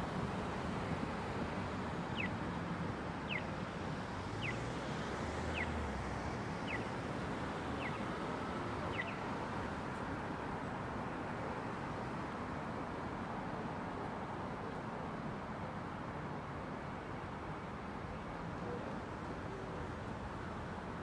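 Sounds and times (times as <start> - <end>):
city street traffic: 0.0 - 21.0.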